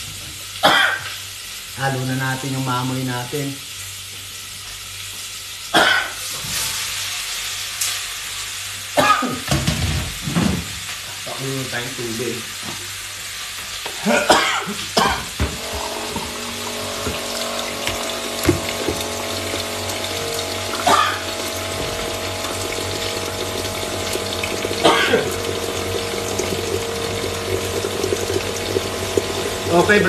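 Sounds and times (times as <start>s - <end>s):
water running: 13.8s - 30.0s
low steady hum: 15.0s - 30.0s.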